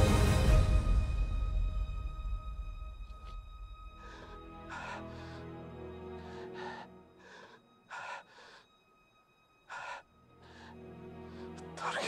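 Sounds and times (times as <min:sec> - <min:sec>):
film score held tones: 0:00.0 - 0:12.0
man gasping breaths: 0:04.0 - 0:05.6, 0:06.2 - 0:08.8, 0:09.7 - 0:11.6.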